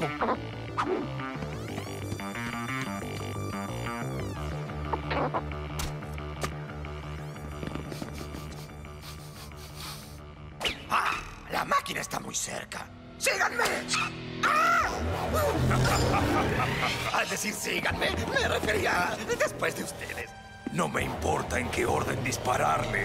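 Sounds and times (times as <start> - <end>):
cartoon background music: 0.0 - 23.0
cartoon character yelps: 14.0 - 15.0.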